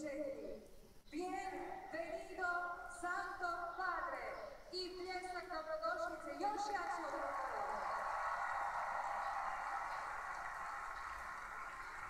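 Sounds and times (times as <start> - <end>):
stadium crowd noise through tv speaker: 6.3 - 12.0.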